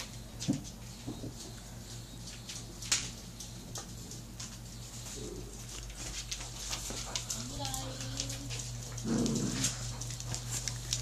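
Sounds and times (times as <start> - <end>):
claws and toys clicking on floor: 2.2 - 11.0.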